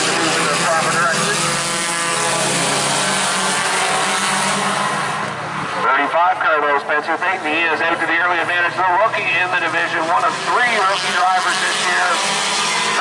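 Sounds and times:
race car engines droning: 0:00.0 - 0:13.0.

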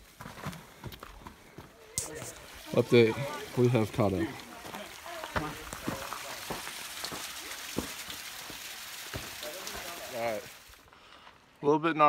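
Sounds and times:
footsteps on stones: 0:00.0 - 0:11.4
water running down small waterfall: 0:01.9 - 0:10.9.

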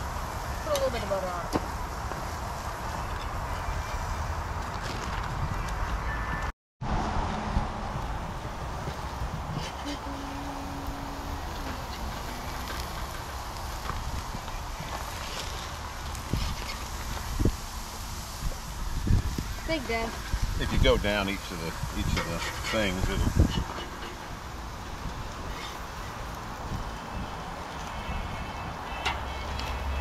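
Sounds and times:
chicken sizzling on grill: 0:00.0 - 0:04.6, 0:07.9 - 0:30.0
wind rumbling on microphone: 0:00.0 - 0:30.0.

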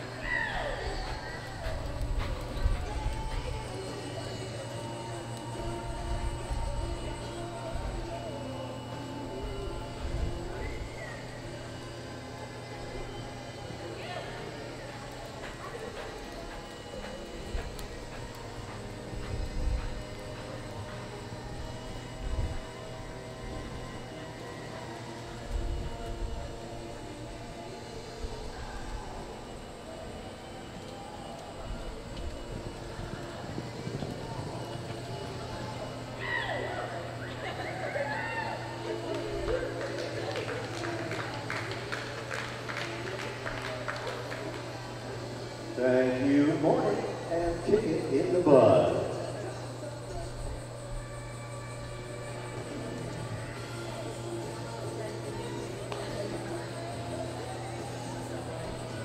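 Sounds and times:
distant voices: 0:00.0 - 0:59.0
faint music: 0:00.0 - 0:59.0
horse hooves thudding on dirt: 0:00.3 - 0:04.0, 0:31.3 - 0:36.1.

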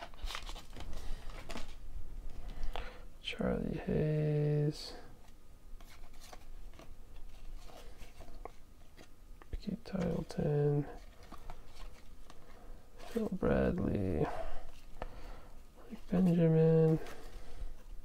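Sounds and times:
cards being flipped through: 0:00.0 - 0:01.8, 0:05.8 - 0:13.4.

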